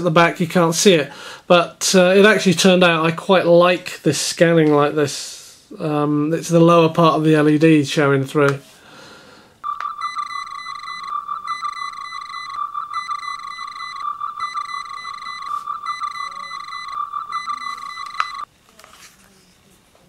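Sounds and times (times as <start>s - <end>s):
warbling electronic beeping: 9.6s - 18.5s.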